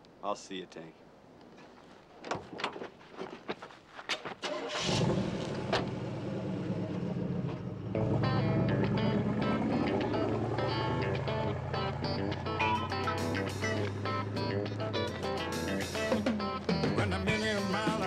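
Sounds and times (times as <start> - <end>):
truck engine starting and running: 4.4 - 18.0
music: 8.0 - 18.0.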